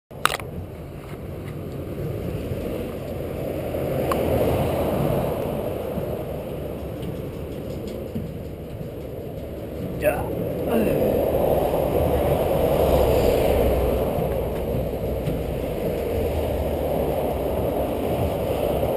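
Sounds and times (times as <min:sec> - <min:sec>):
motorway traffic rumble: 0:00.1 - 0:18.9.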